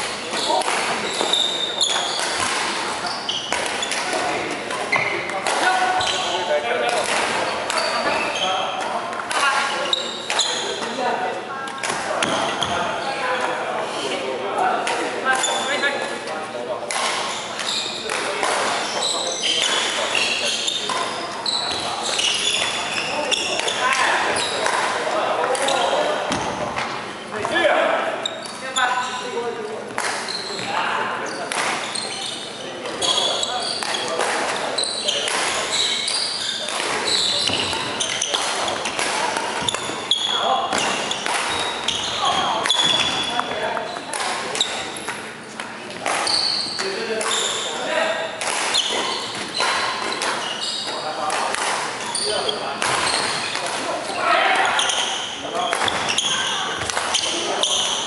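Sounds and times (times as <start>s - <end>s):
background chatter: 0.0s - 58.0s
racket striking shuttlecock: 0.6s - 1.3s, 3.5s - 6.0s, 6.8s - 7.8s, 16.9s - 17.3s, 35.2s - 35.6s, 40.7s - 45.2s, 48.4s - 50.4s, 51.3s - 52.0s.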